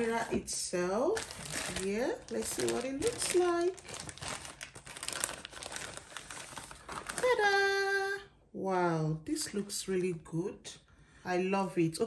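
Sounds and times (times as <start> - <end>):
plastic wrapping crinkling: 0.0 - 7.7.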